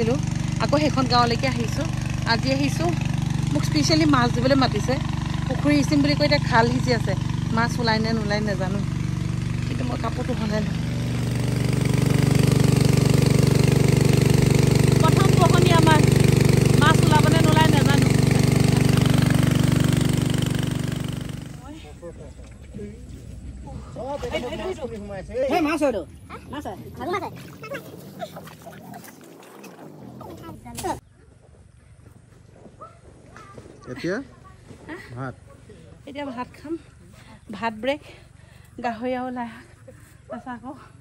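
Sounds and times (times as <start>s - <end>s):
engine-driven water pump humming: 0.0s - 41.0s.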